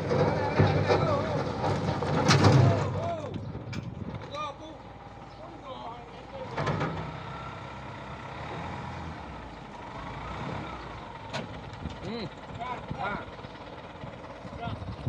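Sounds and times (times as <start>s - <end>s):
diesel engine running under load: 0.0s - 15.0s.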